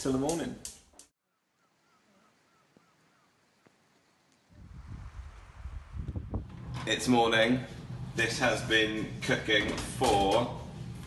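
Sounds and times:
wind noise on microphone: 0:04.5 - 0:07.0.

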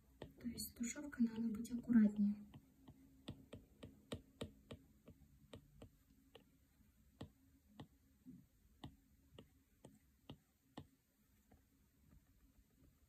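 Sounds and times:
stylus tapping on glass screen: 0:00.1 - 0:06.5.

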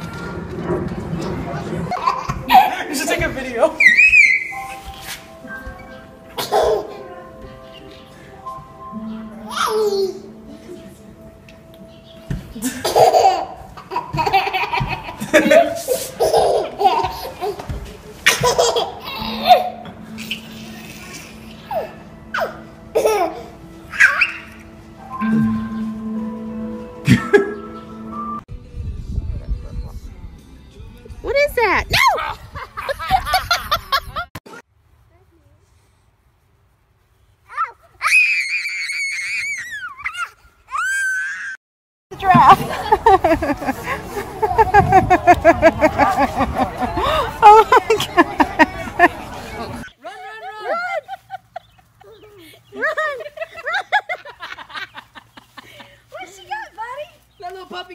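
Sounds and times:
toddler laughing: 0:01.9 - 0:02.8, 0:06.3 - 0:07.2, 0:09.4 - 0:10.8, 0:12.6 - 0:24.6, 0:42.6 - 0:49.8
child screaming: 0:03.8 - 0:04.6, 0:37.5 - 0:41.6
child crying: 0:09.4 - 0:10.3, 0:21.7 - 0:24.6
people laughing: 0:12.5 - 0:21.6, 0:32.5 - 0:34.4, 0:42.4 - 0:49.9, 0:50.5 - 0:56.1
steady background tone: 0:19.6 - 0:28.5.

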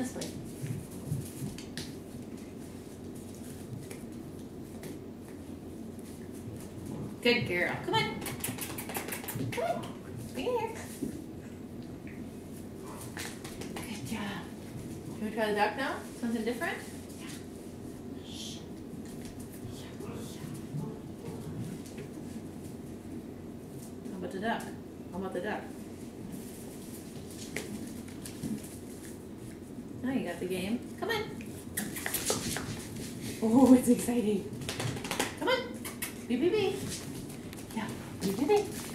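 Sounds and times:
puppy paws tapping on floor: 0:00.0 - 0:11.2, 0:13.0 - 0:15.0, 0:27.1 - 0:29.6, 0:31.4 - 0:38.9
puppy claws clicking on floor: 0:07.7 - 0:10.0, 0:31.8 - 0:33.1, 0:34.6 - 0:36.2.

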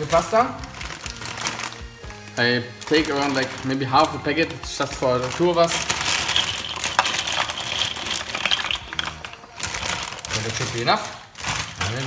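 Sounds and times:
dry pasta clattering into pot: 0:02.8 - 0:12.0.

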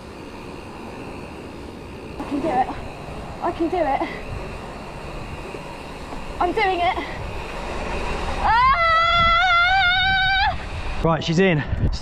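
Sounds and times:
wind rushing: 0:00.0 - 0:12.0
woman screaming: 0:08.4 - 0:10.7.

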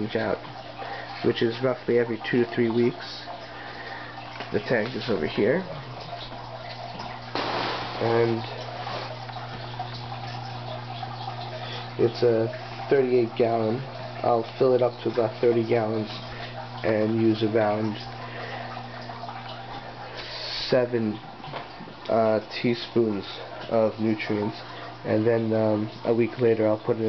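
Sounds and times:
steady low hum: 0:00.0 - 0:27.0
water running and bubbling: 0:00.0 - 0:27.0.

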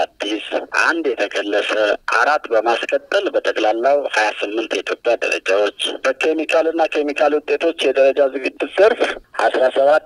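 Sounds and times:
man talking over telephone: 0:00.0 - 0:10.0.

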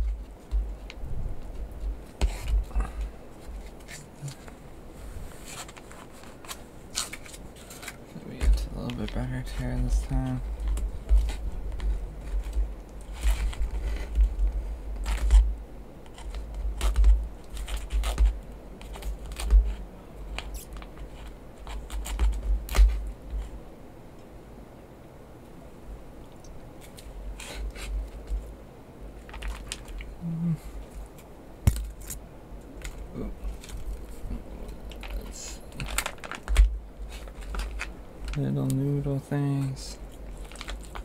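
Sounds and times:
plastic pouch crinkling and tearing: 0:29.2 - 0:30.1, 0:32.8 - 0:38.4, 0:40.1 - 0:41.0.

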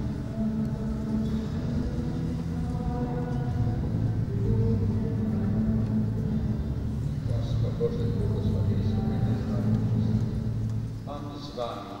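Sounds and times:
slow church music chords: 0:00.0 - 0:12.0.

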